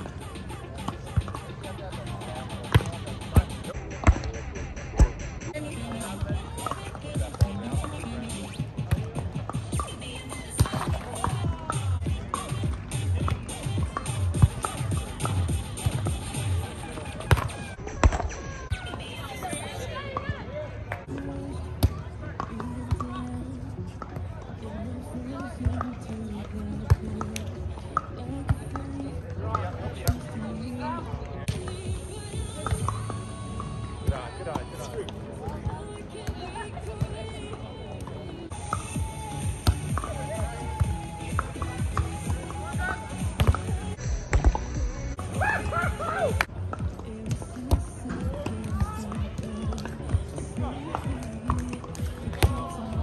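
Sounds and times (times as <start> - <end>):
electronic music with beat: 0.0 - 10.0, 10.6 - 18.7
background music: 0.0 - 20.0, 24.7 - 53.0
voices: 0.0 - 53.0
volleyball being struck: 3.9 - 4.4.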